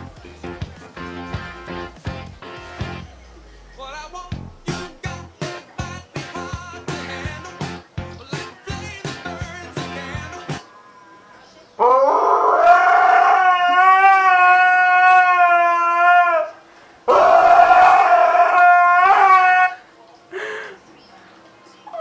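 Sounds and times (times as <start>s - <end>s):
husky howling: 11.8s - 19.8s.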